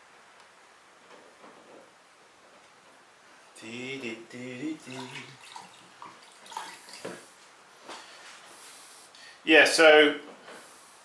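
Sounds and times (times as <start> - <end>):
glaze dripping and splashing: 4.6 - 7.3.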